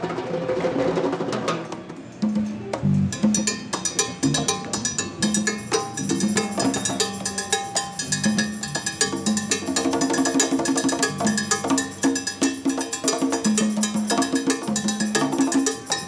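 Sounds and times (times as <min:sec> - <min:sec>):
congas played by hand: 0:00.0 - 0:16.0
timbales played with sticks: 0:01.8 - 0:16.0.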